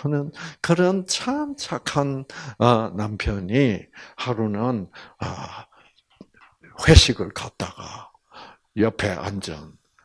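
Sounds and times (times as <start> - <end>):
man talking into a microphone: 0.0 - 5.6, 6.7 - 8.1, 8.8 - 9.8.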